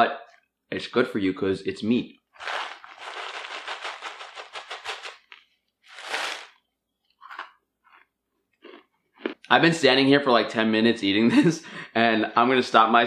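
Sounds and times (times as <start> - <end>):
crunchy chewing: 2.4 - 6.5
paper bag rustling: 2.4 - 6.5.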